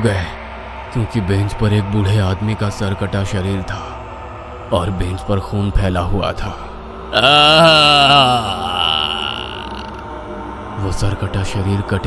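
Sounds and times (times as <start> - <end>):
horror sting wail: 7.1 - 10.7.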